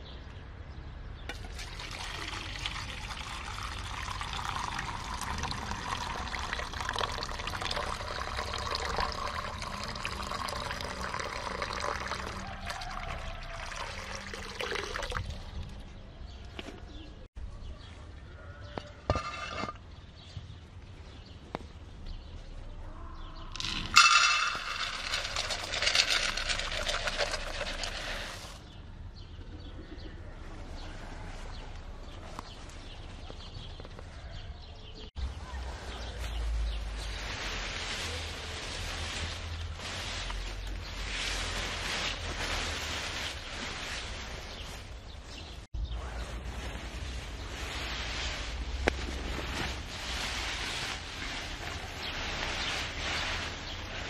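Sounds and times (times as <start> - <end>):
pellets poured into metal pan: 23.5 - 28.6
foliage rustling in wind: 35.2 - 54.0.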